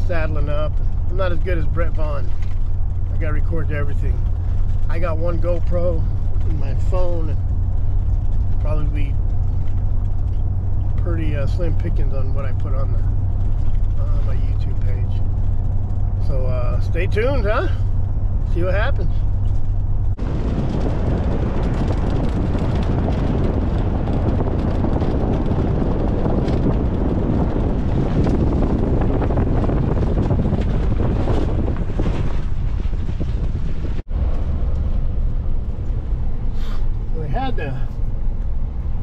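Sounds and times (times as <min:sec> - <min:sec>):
loud rough rushing noise: 0:00.0 - 0:39.0
vehicle drone inside cab: 0:00.0 - 0:39.0.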